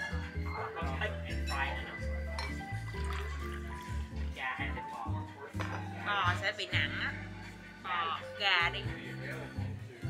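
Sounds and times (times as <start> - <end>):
background music: 0.0 - 10.0
water poured into a glass: 2.4 - 4.2.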